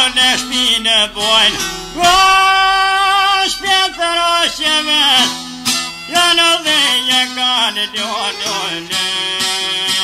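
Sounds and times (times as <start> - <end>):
man singing: 0.0 - 10.0
plucked string accompaniment: 0.0 - 10.0.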